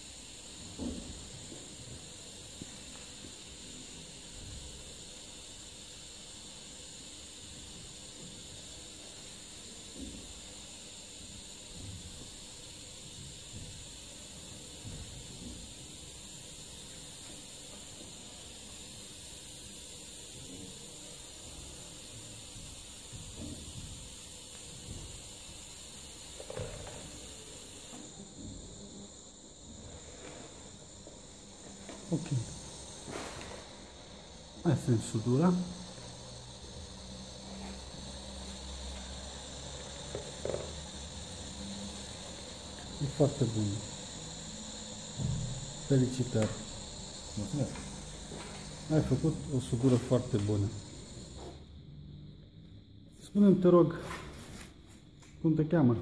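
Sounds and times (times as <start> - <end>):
welding arc hiss: 0.0 - 56.0.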